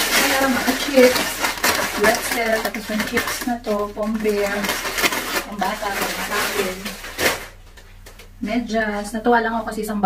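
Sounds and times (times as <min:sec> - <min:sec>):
woman speaking: 0:00.0 - 0:04.8, 0:05.4 - 0:07.1, 0:08.4 - 0:10.0
package handling rustle: 0:00.0 - 0:08.4.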